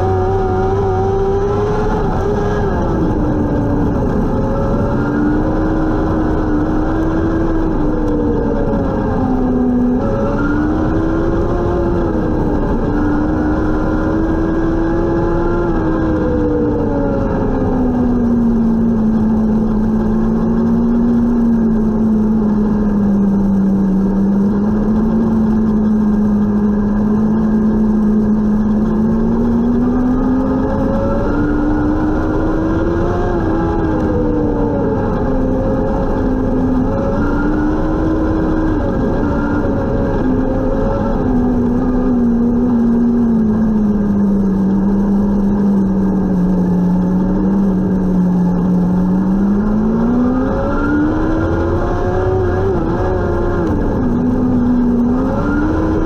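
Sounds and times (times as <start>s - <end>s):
racing car engine: 0.0s - 56.0s
tyre and chassis rumble: 0.0s - 56.0s.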